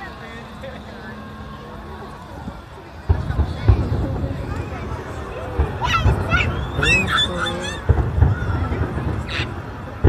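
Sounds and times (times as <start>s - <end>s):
crowd voices: 0.0s - 10.0s
fireworks booming: 2.4s - 10.0s.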